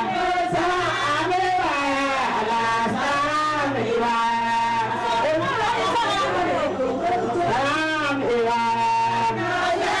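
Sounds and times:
woman singing into microphone: 0.0 - 7.8
women's voices overlapping: 2.7 - 8.0.

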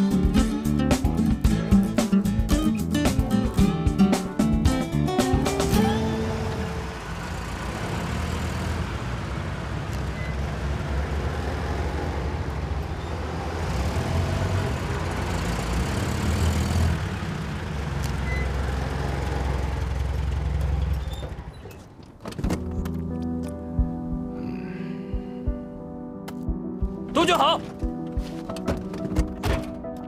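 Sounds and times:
car engines rumbling: 5.4 - 23.7.

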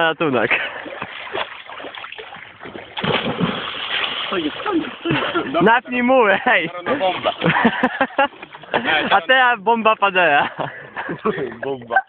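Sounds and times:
swimmers splashing water: 0.4 - 9.3.

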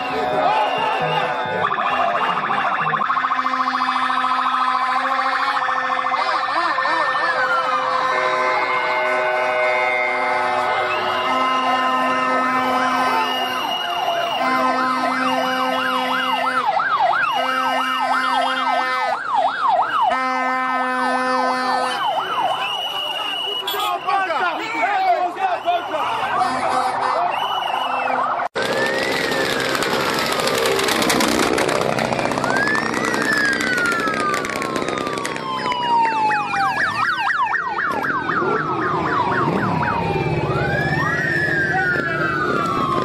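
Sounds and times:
steady siren tone blasts: 0.0 - 24.1, 25.8 - 43.0
yelping sirens: 0.0 - 43.0.

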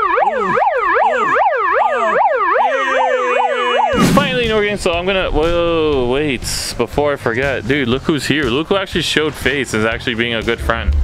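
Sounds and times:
megaphone siren warbling: 0.0 - 4.3
steady tone: 3.9 - 5.2.

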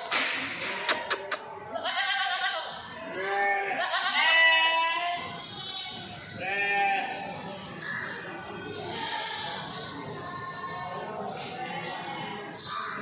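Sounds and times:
goats bleating: 0.7 - 7.3, 8.8 - 9.7.

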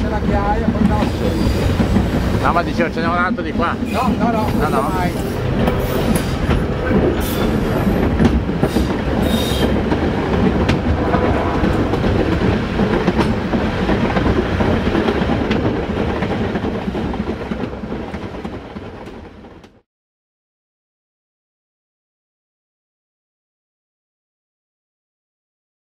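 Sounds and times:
train rumbling on track: 0.0 - 19.8
train wheels clicking: 0.0 - 19.8.

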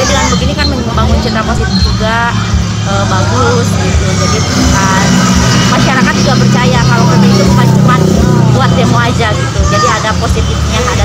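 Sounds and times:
vehicle engine running: 0.0 - 11.0
voices: 0.0 - 11.0.

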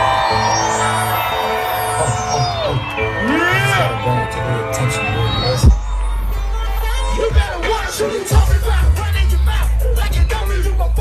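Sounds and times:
crowd voices: 0.0 - 11.0
loud live concert music: 0.0 - 11.0.

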